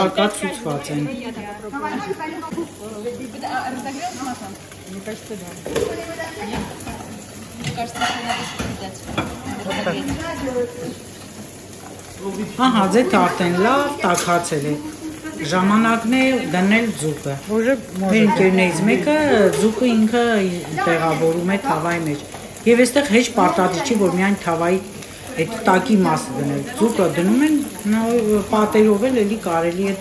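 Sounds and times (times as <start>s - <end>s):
people talking: 0.0s - 11.0s, 12.2s - 30.0s
oil sizzling in a frying pan: 0.0s - 30.0s.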